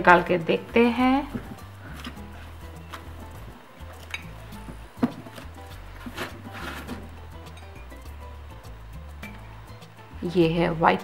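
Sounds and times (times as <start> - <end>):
background music with bass: 0.0 - 11.0
porcelain mugs clinking: 4.0 - 4.4.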